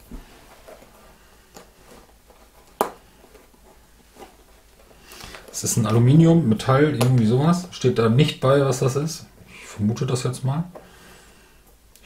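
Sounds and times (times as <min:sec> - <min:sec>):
rustles and ticks of handling: 0:00.1 - 0:06.0.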